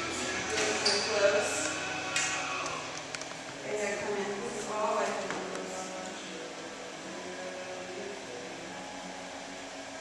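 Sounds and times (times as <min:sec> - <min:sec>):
ventilation hum and hiss: 0:00.0 - 0:10.0.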